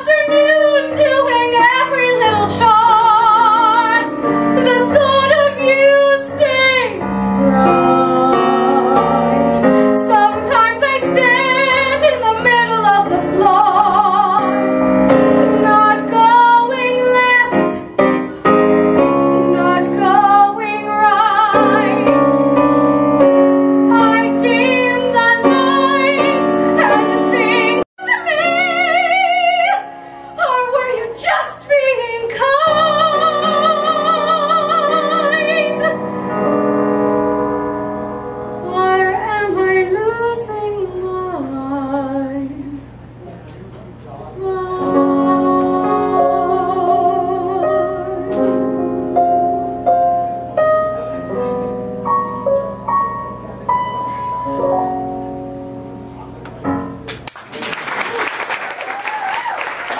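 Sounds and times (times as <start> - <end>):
soprano singing a ballad: 0.0 - 22.9, 23.8 - 37.3, 38.6 - 43.0, 44.4 - 49.2
piano chords: 0.0 - 43.3, 43.9 - 59.9.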